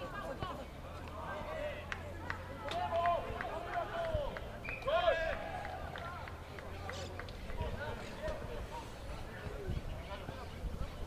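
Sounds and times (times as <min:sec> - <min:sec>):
rugby players shouting: 0:00.0 - 0:06.4.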